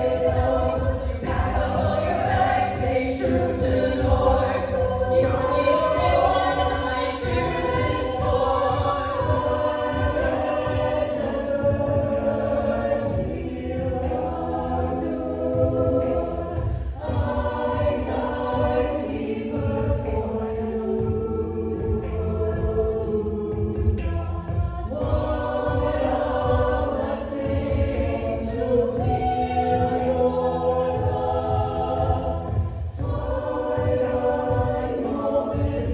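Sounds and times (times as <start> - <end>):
a cappella group singing in harmony: 0.0 - 35.9
vocal percussion beat: 0.0 - 35.9.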